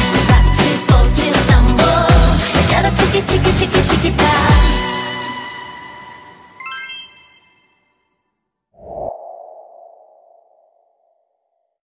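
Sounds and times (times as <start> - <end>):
ping sound effect: 6.6 - 8.0.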